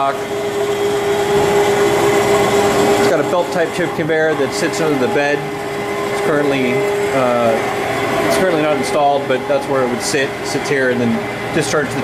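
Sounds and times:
lathe mechanical hum: 0:00.0 - 0:12.0.

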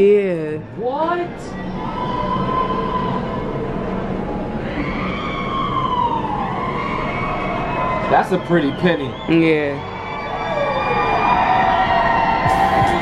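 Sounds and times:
steady low drone: 0:00.0 - 0:08.2, 0:09.1 - 0:13.0
siren-like wailing tone: 0:01.3 - 0:13.0.

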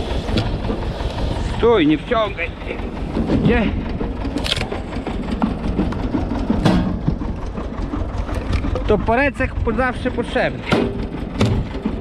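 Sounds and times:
log splitter boring into log: 0:00.0 - 0:09.2
tractor engine running: 0:00.0 - 0:12.0.

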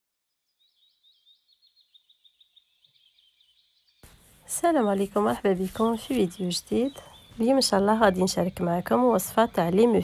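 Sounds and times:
small bird chirping: 0:00.4 - 0:10.0.

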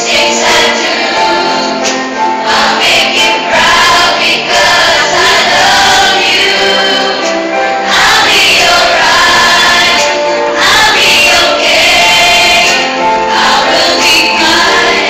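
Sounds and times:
children's choir singing: 0:00.0 - 0:15.0.

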